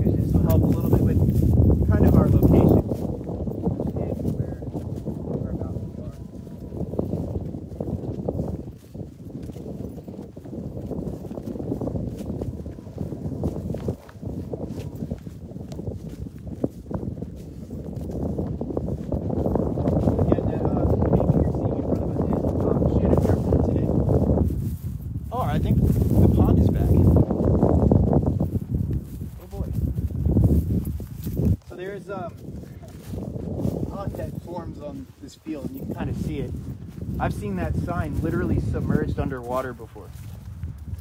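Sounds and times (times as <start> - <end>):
footsteps on dry stubbly field: 0.0 - 41.0
wind rumble on microphone: 0.0 - 41.0.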